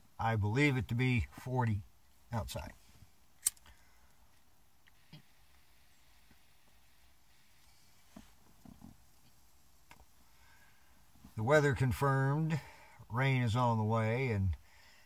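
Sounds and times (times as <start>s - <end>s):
object handling clicks: 3.4s - 3.8s
soft rustles: 4.9s - 10.3s.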